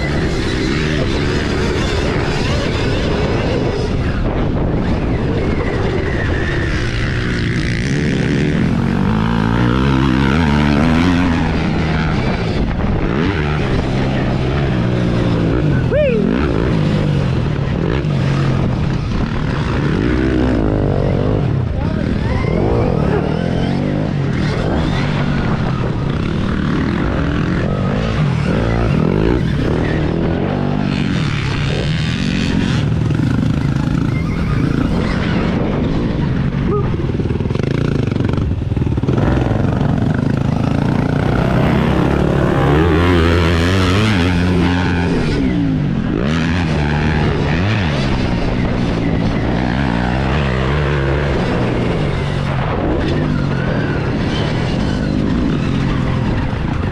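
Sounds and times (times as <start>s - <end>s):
motorcycle engine revving: 0.0s - 56.9s
wind and track rush: 0.0s - 56.9s.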